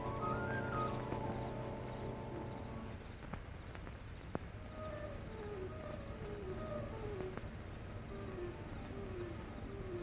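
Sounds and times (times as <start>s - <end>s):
optical soundtrack hiss and hum: 0.0s - 10.0s
soft film score: 0.0s - 10.0s.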